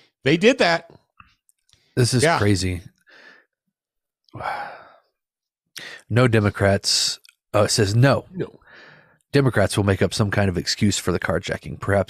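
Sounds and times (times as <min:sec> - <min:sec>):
faint breath: 0:03.0 - 0:03.6, 0:08.6 - 0:09.2
man sighing: 0:04.4 - 0:05.0.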